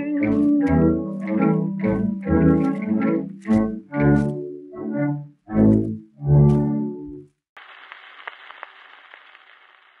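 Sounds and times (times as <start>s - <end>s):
record surface hiss: 6.5s - 10.0s
record clicks and crackles: 7.6s - 10.0s.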